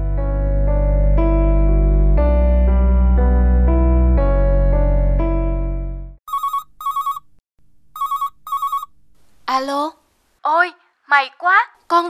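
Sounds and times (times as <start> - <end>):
warbling phone ringtone: 6.3 - 7.3, 8.0 - 8.9.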